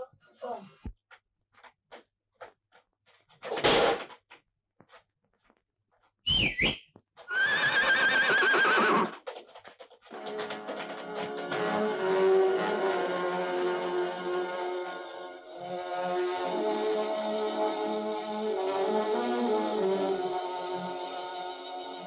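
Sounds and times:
horse whinnying: 0:06.3 - 0:09.2
film score music: 0:10.1 - 0:22.0.

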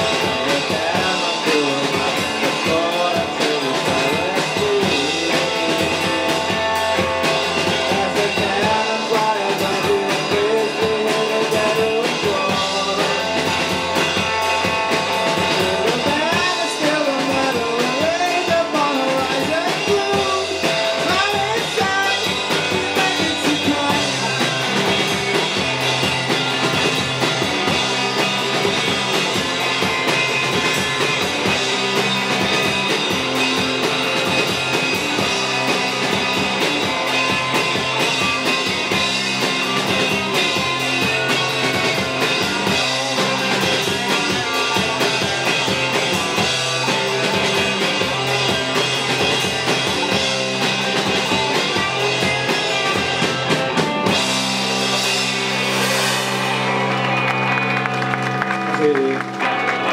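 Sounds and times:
bass guitar: 0:00.0 - 0:59.9
drum kit: 0:00.0 - 0:59.9
electric guitars: 0:00.0 - 0:59.9.

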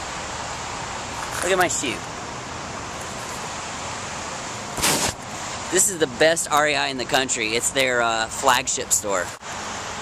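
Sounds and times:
short loud whoosh: 0:04.8 - 0:05.2.

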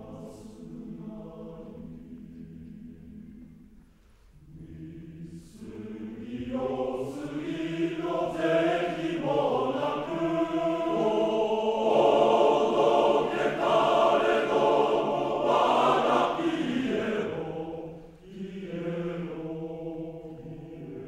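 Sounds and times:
male choir singing unaccompanied: 0:00.0 - 0:03.6, 0:04.4 - 0:21.0.

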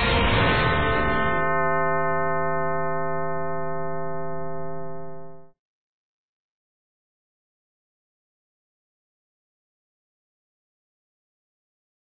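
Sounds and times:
theme music long held tone: 0:00.0 - 0:05.4.

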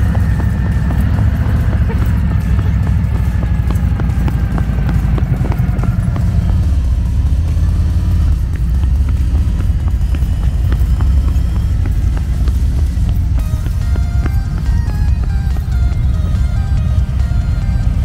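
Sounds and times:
motorcycle engine pulsing: 0:00.0 - 0:18.0.

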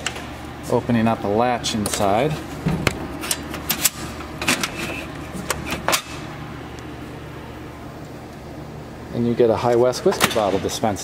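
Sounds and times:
steady low hum: 0:00.0 - 0:11.0
vending machine mechanism clunking: 0:01.8 - 0:06.3, 0:10.0 - 0:11.0.

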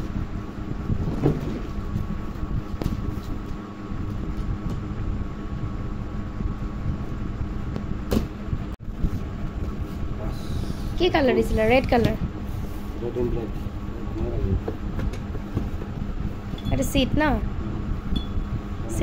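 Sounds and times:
low rumble and hum: 0:00.0 - 0:19.0.

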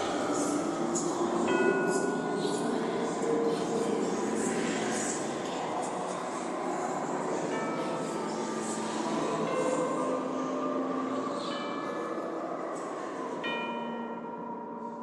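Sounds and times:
ringing bell-like tones: 0:00.0 - 0:15.0.

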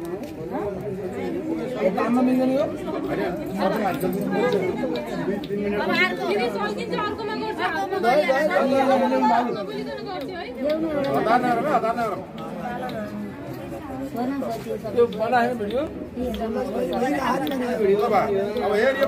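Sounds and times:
overlapping chatter of voices: 0:00.0 - 0:19.0.

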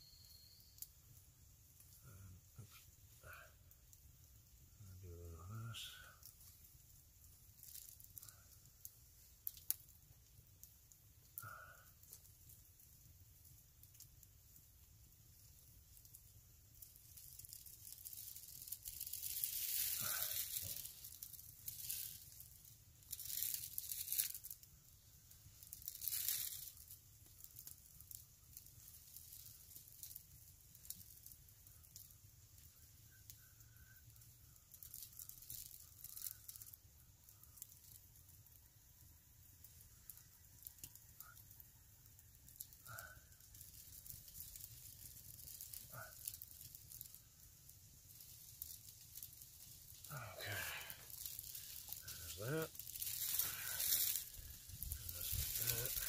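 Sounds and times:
dry leaves rustling and crunching: 0:17.1 - 0:24.7, 0:25.4 - 0:30.2, 0:34.8 - 0:36.7, 0:42.5 - 0:56.0.

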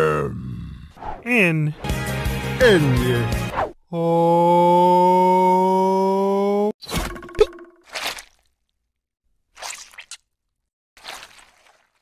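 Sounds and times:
cartoon wet squish: 0:06.8 - 0:08.8, 0:09.5 - 0:12.0.

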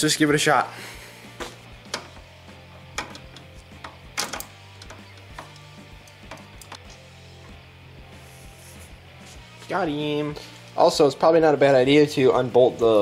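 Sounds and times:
background music with low bass: 0:00.0 - 0:13.0
socket ratchet clicking: 0:02.8 - 0:06.9.

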